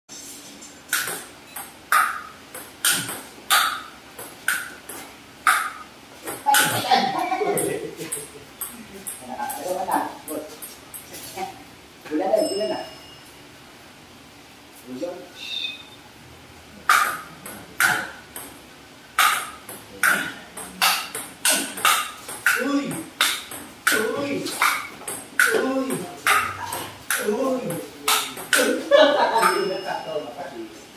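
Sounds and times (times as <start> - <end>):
table tennis ball clicks: 0.9 - 3.9, 4.5 - 4.8, 5.5 - 6.7, 16.9 - 18.5, 19.2 - 22.6
voices calling out: 19.2 - 30.8.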